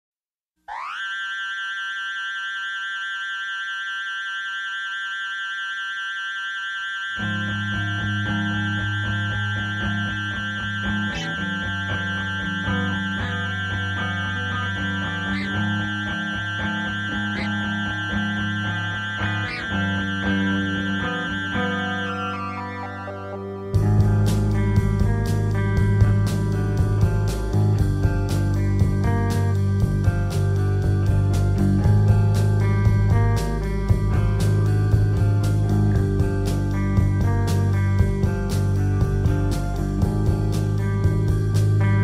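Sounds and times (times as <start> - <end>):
held electric guitar tone: 5.8 - 42.0
post-hardcore band playing: 7.4 - 42.0.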